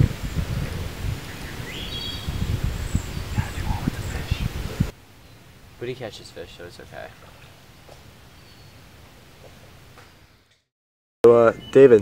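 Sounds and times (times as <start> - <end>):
wind buffeting microphone: 0.0 - 5.0
steady hiss: 0.0 - 10.3
bird chirping: 0.6 - 4.5, 5.2 - 8.9, 11.3 - 12.0.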